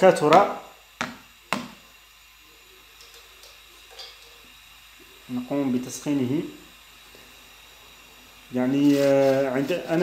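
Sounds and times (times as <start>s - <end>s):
gas stove burner hissing: 0.0s - 10.0s.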